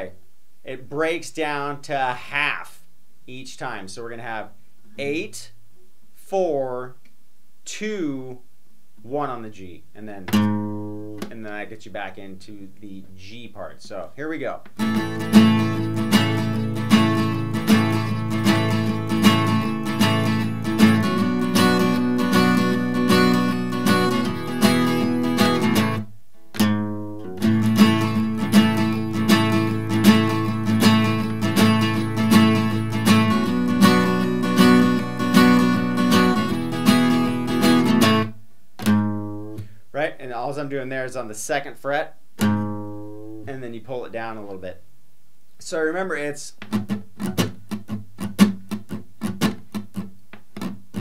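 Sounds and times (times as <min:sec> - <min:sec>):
acoustic guitar strummed: 0:10.3 - 0:11.4, 0:14.8 - 0:39.8, 0:42.4 - 0:43.6, 0:46.6 - 0:51.0.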